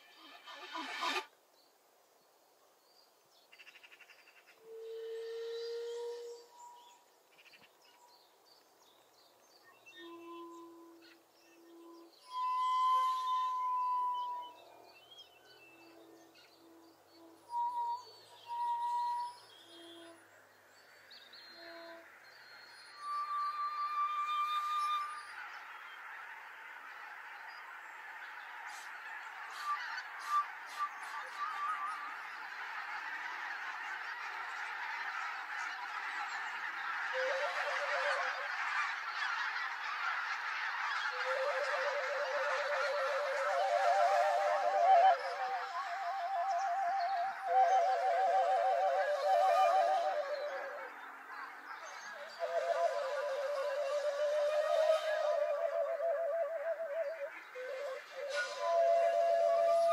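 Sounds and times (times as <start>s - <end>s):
geese honking: 0.0s - 1.2s, 24.2s - 59.9s
bamboo flutes playing: 0.0s - 1.3s, 4.6s - 7.1s, 9.8s - 20.4s, 21.4s - 25.5s, 28.7s - 32.3s, 37.1s - 38.6s, 41.1s - 51.0s, 52.2s - 59.9s.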